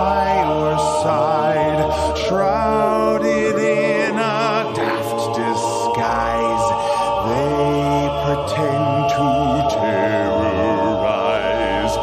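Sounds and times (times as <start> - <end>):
a cappella voices singing chords: 0.0 - 12.0.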